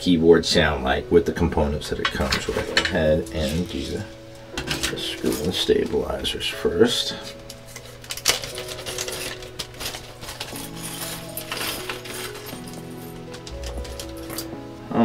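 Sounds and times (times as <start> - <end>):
soft background music: 0.0 - 15.0
small parts clinking in plastic bag: 2.0 - 4.0, 4.6 - 6.3, 7.2 - 14.5.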